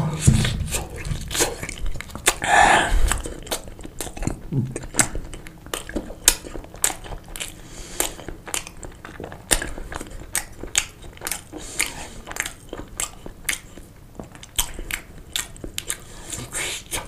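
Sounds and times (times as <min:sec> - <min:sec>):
biting and chewing: 0:00.1 - 0:17.0
wet mouth clicks and smacks: 0:00.7 - 0:02.4, 0:03.0 - 0:17.0.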